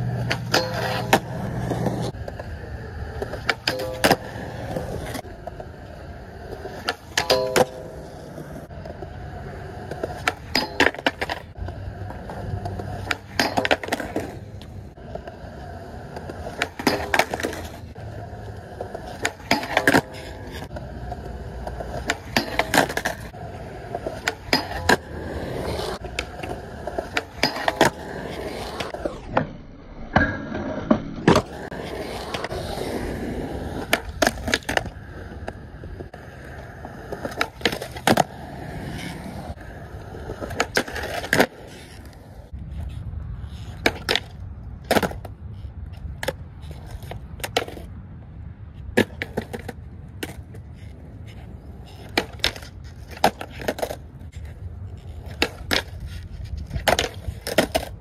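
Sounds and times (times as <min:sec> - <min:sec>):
skateboard tail popping: 0:00.0 - 0:29.5, 0:30.2 - 0:47.8, 0:48.8 - 0:58.0
skateboard grinding on metal bar: 0:00.0 - 0:44.3
skateboard wheels rolling: 0:00.0 - 0:58.0
skateboard landing on concrete: 0:03.2 - 0:05.6, 0:09.9 - 0:17.9, 0:18.5 - 0:29.5, 0:30.9 - 0:36.2, 0:43.6 - 0:45.4, 0:48.9 - 0:50.4, 0:55.0 - 0:58.0.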